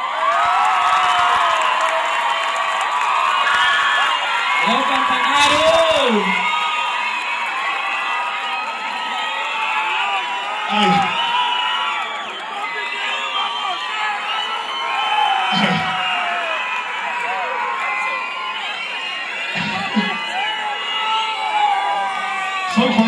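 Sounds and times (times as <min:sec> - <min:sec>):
concert crowd cheering: 0:00.0 - 0:23.0.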